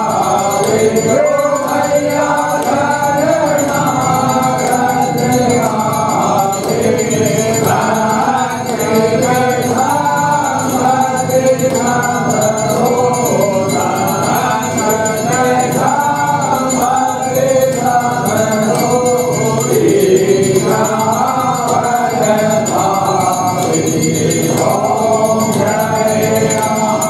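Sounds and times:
group singing a hymn: 0:00.0 - 0:27.0.

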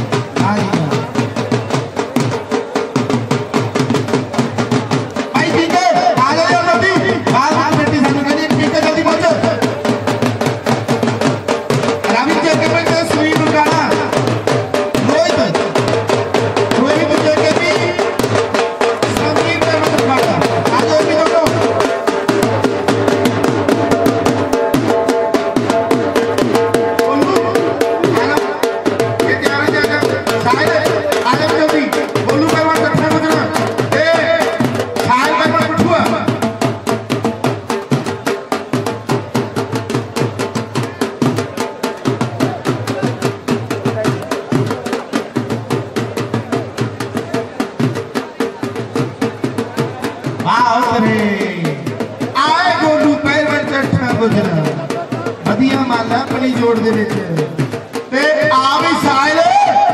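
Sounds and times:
fast steady drumming: 0:00.0 - 0:59.9.

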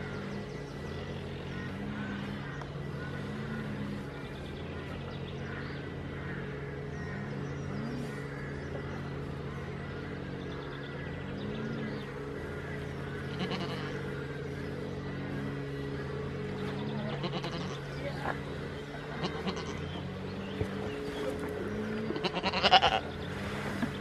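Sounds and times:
steady low hum: 0:00.0 - 0:24.0
goat bleating: 0:13.2 - 0:14.1, 0:17.0 - 0:17.9, 0:19.0 - 0:20.0, 0:22.0 - 0:23.1.

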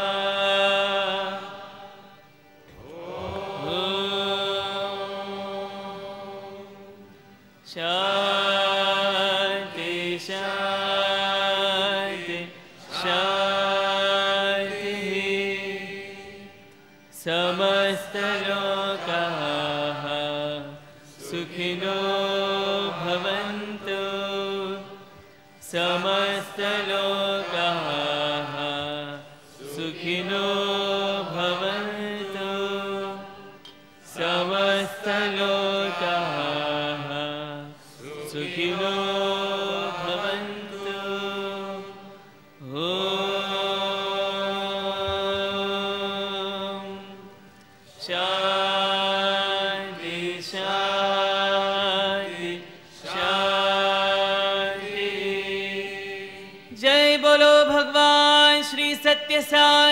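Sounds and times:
devotional chanting: 0:00.0 - 0:59.9.

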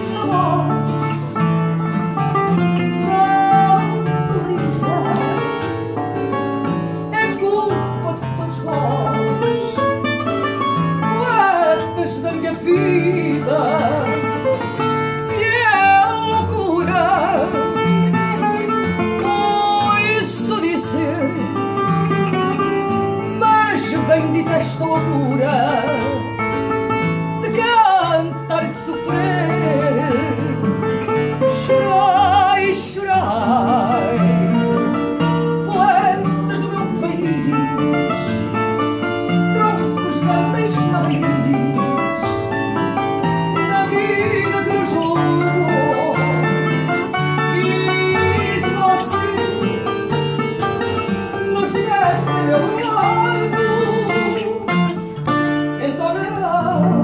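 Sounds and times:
woman singing with heavy vibrato: 0:00.0 - 0:10.3, 0:11.0 - 0:26.7, 0:27.4 - 0:57.0
guitar strumming chords: 0:00.0 - 0:57.0
plucked guitar melody: 0:00.0 - 0:57.0.

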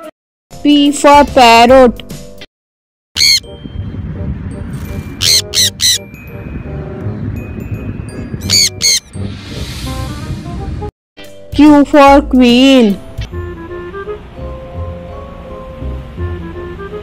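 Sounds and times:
parrots screeching: 0:03.2 - 0:03.4, 0:05.2 - 0:06.0, 0:08.5 - 0:09.0.

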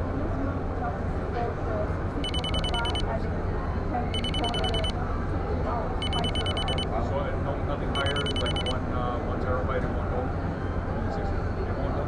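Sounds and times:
electronic alarm beeping: 0:02.2 - 0:03.0, 0:04.2 - 0:05.0, 0:06.0 - 0:06.9, 0:08.0 - 0:08.8.

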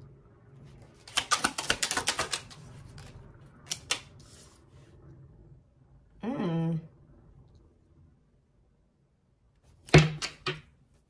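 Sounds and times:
cards snapping: 0:01.0 - 0:03.1, 0:03.7 - 0:04.1.

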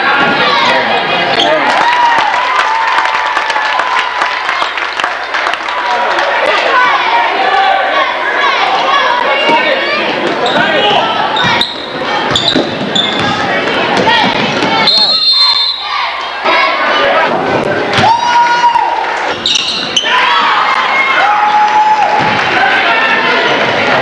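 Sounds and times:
spectators' voices and shouts: 0:00.0 - 0:24.0.

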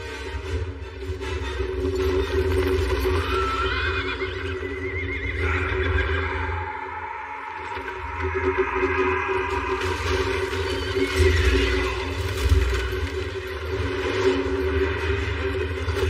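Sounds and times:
film score with low drone: 0:00.0 - 0:16.0
horses neighing: 0:02.9 - 0:12.5.

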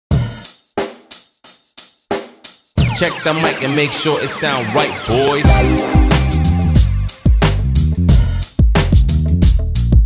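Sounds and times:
drum and cymbal hits: 0:00.1 - 0:10.0.

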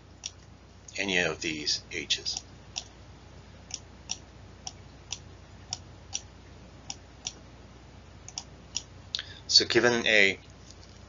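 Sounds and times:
faint steady hum: 0:00.0 - 0:11.0
computer mouse clicking: 0:08.3 - 0:08.9.

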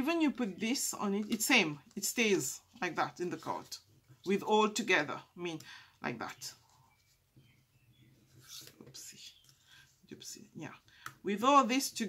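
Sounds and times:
faint rustling of cardstock: 0:06.3 - 0:10.2.

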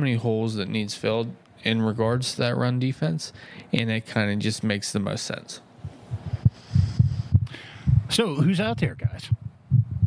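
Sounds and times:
low dull thumps: 0:05.8 - 0:08.2, 0:08.9 - 0:10.0.

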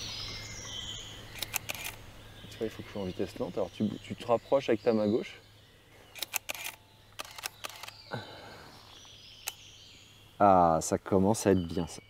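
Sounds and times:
camera shutter clicks: 0:01.4 - 0:02.0, 0:06.2 - 0:08.0.

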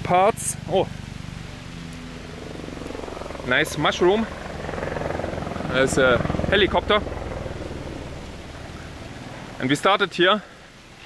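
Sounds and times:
helicopter rotor beat: 0:00.9 - 0:10.7.

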